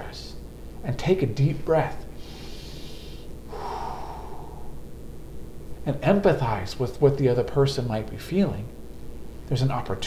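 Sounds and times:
man breathing in and out: 0:02.1 - 0:04.9.

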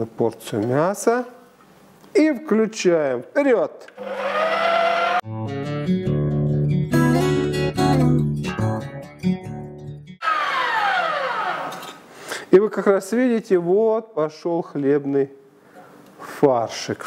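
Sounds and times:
meat grinder motor whining: 0:04.0 - 0:05.2, 0:10.2 - 0:12.0
plucked guitar music jingle: 0:05.2 - 0:09.7.

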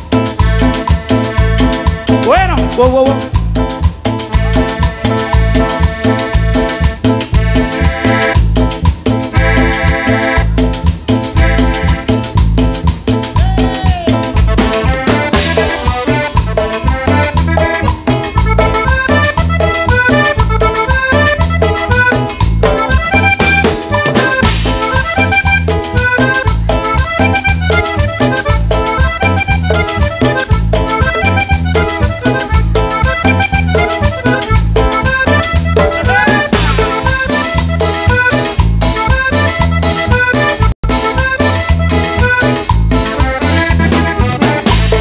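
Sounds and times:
bass guitar: 0:00.0 - 0:45.0
button accordion: 0:00.0 - 0:45.0
drum kit: 0:00.0 - 0:45.0
electric guitar: 0:00.0 - 0:45.0.

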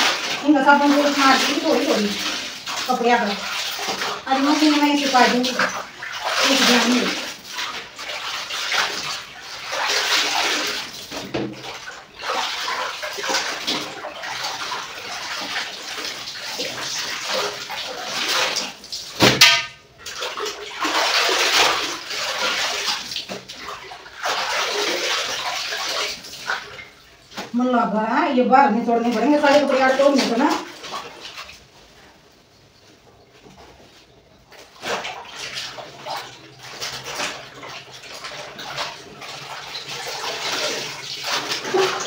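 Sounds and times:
loud sharp splash: 0:00.0 - 0:26.8, 0:34.8 - 0:42.0
water pouring off wet cloth: 0:00.0 - 0:27.6, 0:29.0 - 0:31.9, 0:33.9 - 0:42.0
clothes splashing in water: 0:00.0 - 0:27.7, 0:28.9 - 0:42.0.

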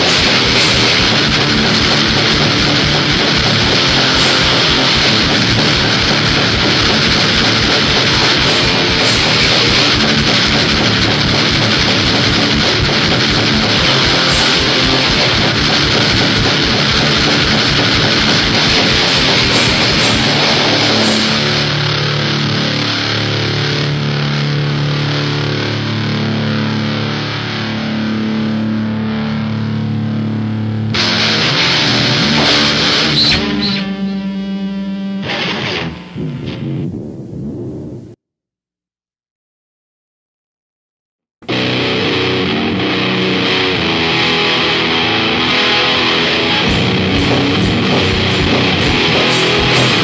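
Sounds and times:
fast drum beat: 0:00.0 - 0:21.7, 0:46.6 - 0:50.0
distorted metal guitars: 0:00.0 - 0:38.0, 0:41.4 - 0:50.0.

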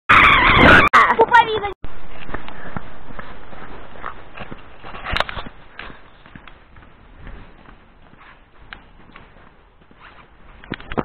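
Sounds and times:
girl's high voice: 0:00.6 - 0:01.8.

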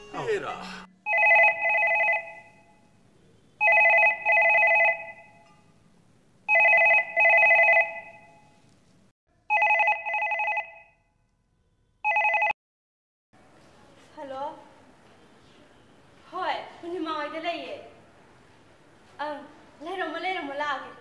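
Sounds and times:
telephone ringing: 0:01.0 - 0:02.8, 0:03.6 - 0:05.6, 0:06.5 - 0:08.6, 0:09.5 - 0:11.0, 0:12.0 - 0:12.6.

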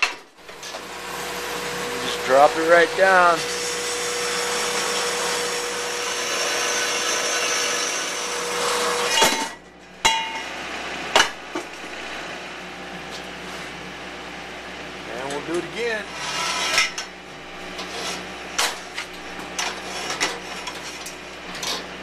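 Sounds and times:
bandsaw cutting steel: 0:00.0 - 0:10.4, 0:15.2 - 0:22.0
metallic clank: 0:09.1 - 0:10.6.

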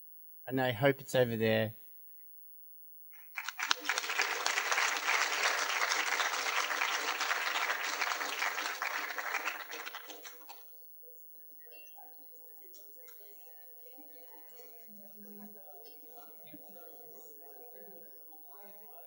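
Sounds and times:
audience applauding: 0:03.2 - 0:10.7.

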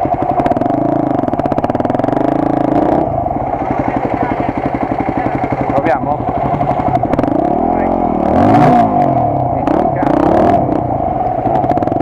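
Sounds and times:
clatter: 0:00.0 - 0:12.0
dirt bike engines revving: 0:00.0 - 0:12.0.

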